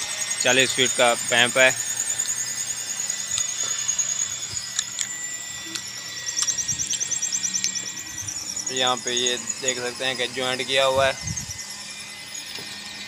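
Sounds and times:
faint steady whine: 0.0s - 13.0s
insects chirping: 0.4s - 13.0s.

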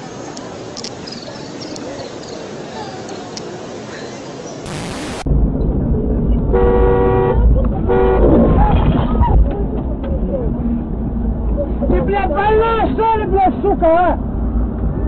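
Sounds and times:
loud low rumble: 4.7s - 12.2s
vehicle horn honking: 6.6s - 8.4s.

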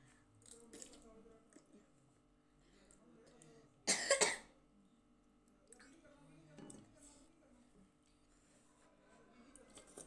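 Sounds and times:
child coughing: 3.9s - 4.5s.

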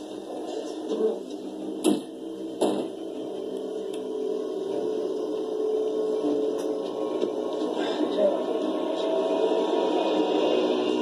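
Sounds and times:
muffled background hum: 0.0s - 11.0s.

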